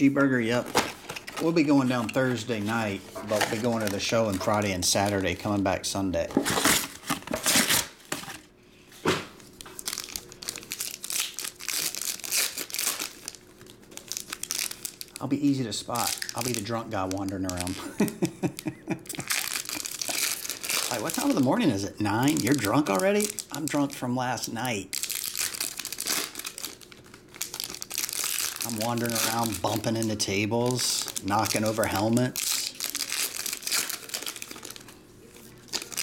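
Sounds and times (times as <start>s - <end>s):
foil wrapper crinkling: 0.3s - 8.4s, 9.4s - 36.0s.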